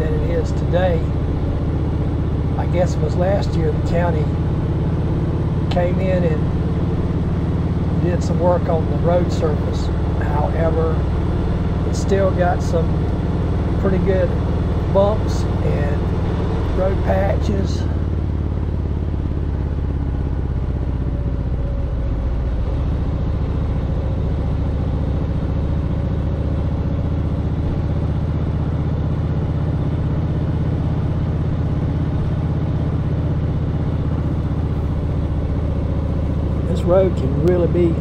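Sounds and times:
motorcycle engine cruising: 0:00.0 - 0:38.0
road and wind noise: 0:00.0 - 0:38.0.

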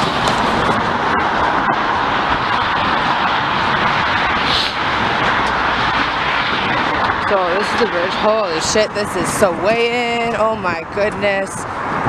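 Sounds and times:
passing road traffic: 0:00.0 - 0:12.0.

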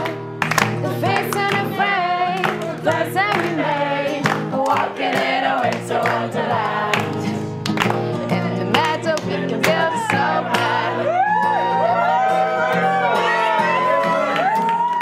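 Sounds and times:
woman singing: 0:00.0 - 0:07.5, 0:08.2 - 0:11.5
hands clapping along: 0:00.0 - 0:11.0, 0:13.7 - 0:15.0
strummed acoustic guitar: 0:00.0 - 0:14.8
group singing christmas song: 0:00.8 - 0:07.6, 0:08.2 - 0:11.3.

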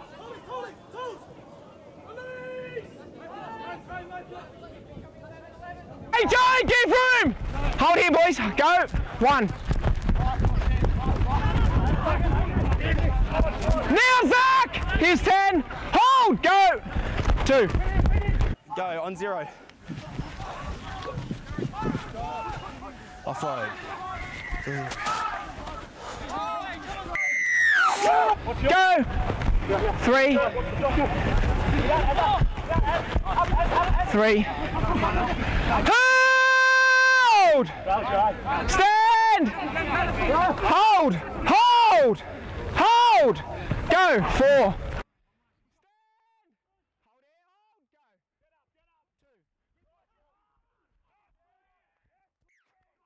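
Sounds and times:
players shouting: 0:00.0 - 0:09.5, 0:10.2 - 0:18.4, 0:20.0 - 0:45.0
high steady whistle-like tone: 0:27.2 - 0:28.0.

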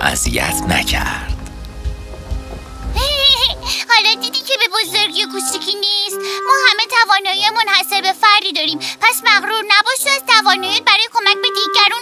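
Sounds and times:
low noisy rumble: 0:00.0 - 0:03.8
faint steady background tones: 0:00.0 - 0:12.0.

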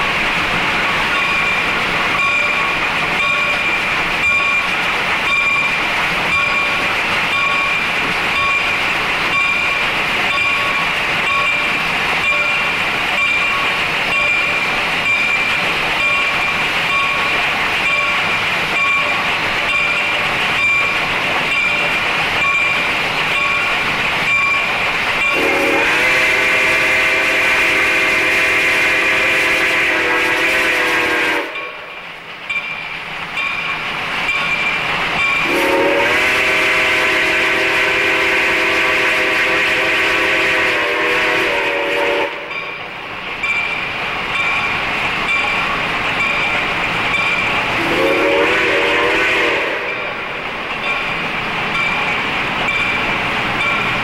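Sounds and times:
steam locomotive chugging: 0:00.0 - 0:54.0
steam whistle blasts: 0:25.3 - 0:31.8, 0:35.4 - 0:42.5, 0:47.8 - 0:50.2.

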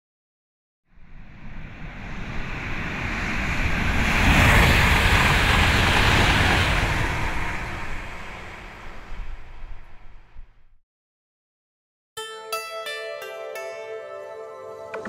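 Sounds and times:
rushing noise: 0:00.9 - 0:10.6.

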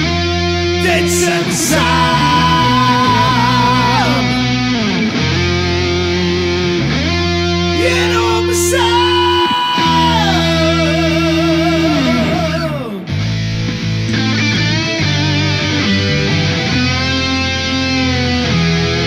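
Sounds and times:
distorted electric guitar chords: 0:00.0 - 0:19.0
sliding lead guitar notes: 0:00.0 - 0:19.0.

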